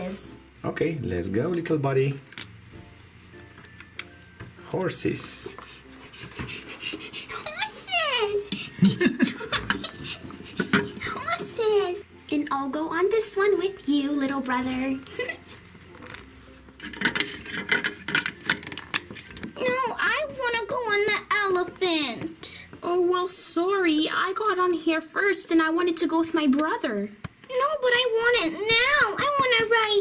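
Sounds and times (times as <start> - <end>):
person panting: 5.6 - 7.5
plastic toys clicking: 16.8 - 19.5.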